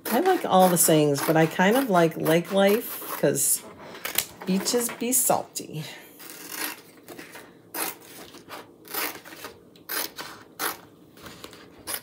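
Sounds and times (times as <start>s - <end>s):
plastic sheets rustling: 3.1s - 5.4s, 6.3s - 12.0s
scissors snipping plastic: 6.2s - 10.8s.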